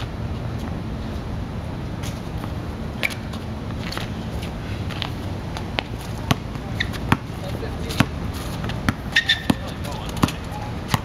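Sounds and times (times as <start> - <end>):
low background hum: 0.0 - 11.0
basketball bouncing on asphalt: 5.0 - 11.0.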